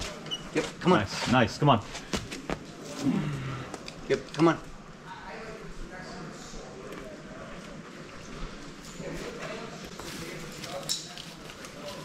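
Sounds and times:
faint indistinct voices: 0:04.7 - 0:12.0.

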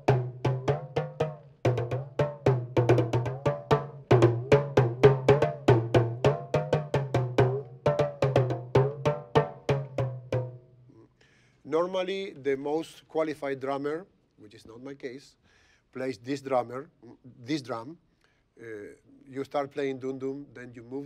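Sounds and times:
talking drum struck rapidly: 0:00.0 - 0:10.6.

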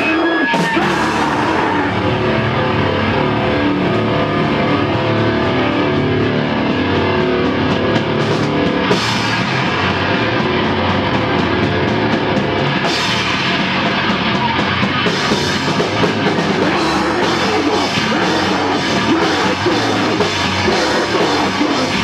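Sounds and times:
bass guitar: 0:00.0 - 0:22.0
distorted electric guitars: 0:00.0 - 0:22.0
drum kit: 0:00.0 - 0:22.0.

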